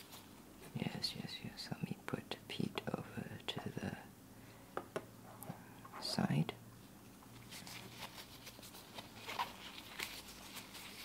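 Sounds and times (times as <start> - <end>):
person whispering: 0.6 - 4.1, 5.4 - 6.6.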